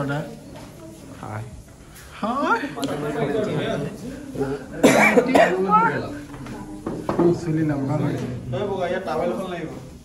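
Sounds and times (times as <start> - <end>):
person coughing: 4.8 - 5.7.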